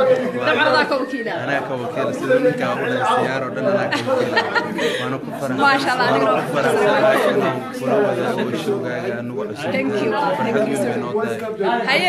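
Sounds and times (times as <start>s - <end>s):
background chatter: 0.0s - 12.0s
close voice talking: 0.0s - 12.0s.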